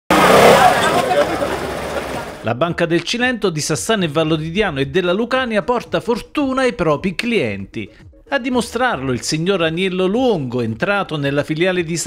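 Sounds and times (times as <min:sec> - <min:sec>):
scooter engine running: 0:00.1 - 0:02.4
voices: 0:00.1 - 0:02.6.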